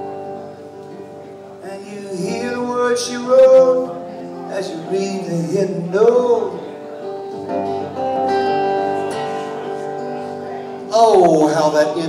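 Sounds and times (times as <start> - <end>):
acoustic guitar chords strummed: 0.0 - 12.0.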